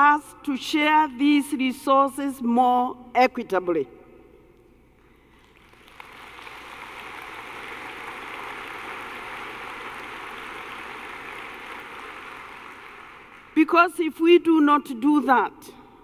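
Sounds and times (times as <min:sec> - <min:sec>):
audience applauding: 0:05.5 - 0:13.6.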